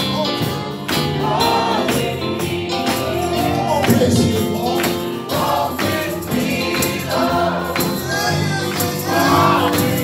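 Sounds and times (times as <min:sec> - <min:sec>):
group singing gospel hymn: 0:00.0 - 0:10.0
keyboard accompaniment: 0:00.0 - 0:10.0.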